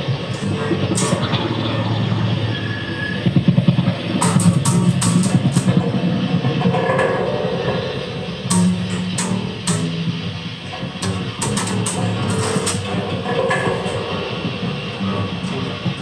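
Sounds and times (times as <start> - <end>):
dense low drone: 0.0 - 16.0
guitar playing: 0.0 - 16.0.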